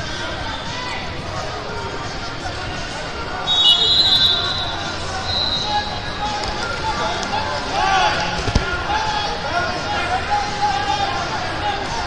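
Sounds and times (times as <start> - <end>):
hubbub of voices: 0.0 - 12.0.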